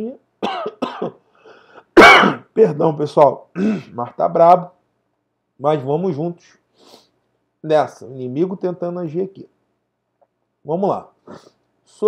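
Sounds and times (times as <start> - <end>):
man coughing: 0.4 - 1.2, 1.9 - 2.6, 3.6 - 4.0.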